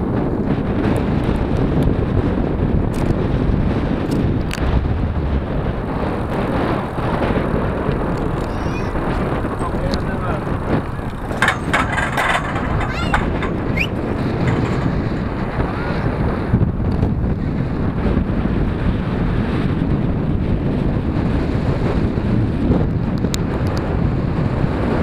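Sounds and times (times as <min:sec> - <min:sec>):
wind buffeting microphone: 0:00.0 - 0:25.0
bike clattering over cattle grid: 0:06.0 - 0:16.8.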